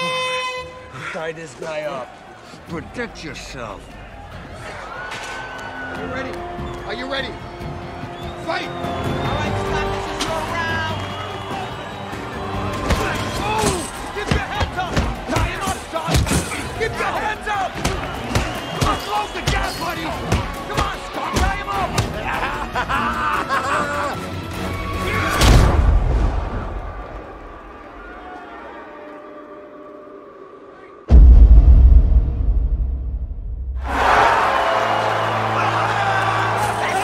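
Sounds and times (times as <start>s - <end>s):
background music: 0.0s - 32.8s, 33.7s - 37.0s
crowd shouting: 0.8s - 25.5s, 33.8s - 37.0s
loud deep boom: 31.1s - 34.2s.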